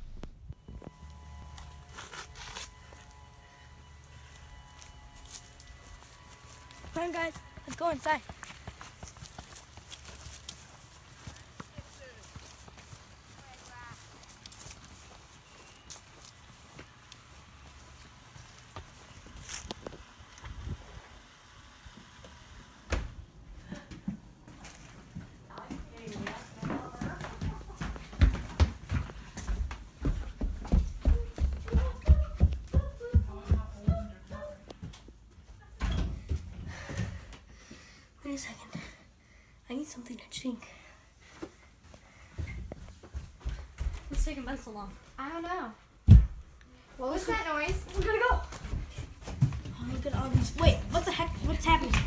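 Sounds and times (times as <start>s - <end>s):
dull low thumps: 0.0s - 0.6s
heavy footsteps on floor: 23.1s - 35.5s, 41.2s - 44.4s, 46.0s - 52.0s.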